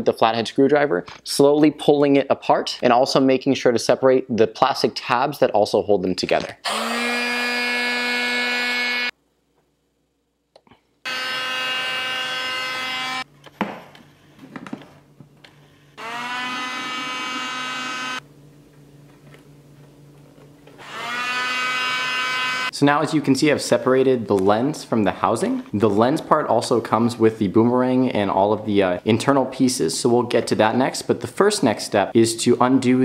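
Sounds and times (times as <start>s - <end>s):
heat gun motor whine: 6.6s - 9.1s, 11.0s - 13.3s, 16.0s - 18.2s, 20.8s - 22.7s.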